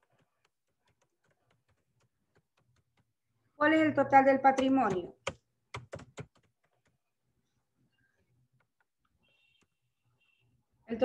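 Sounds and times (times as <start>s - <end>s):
computer keyboard typing: 0.0s - 3.2s, 4.4s - 7.0s.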